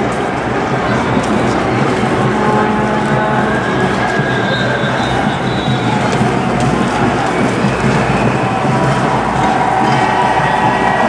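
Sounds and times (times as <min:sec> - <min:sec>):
protest crowd street din: 0:00.0 - 0:11.0.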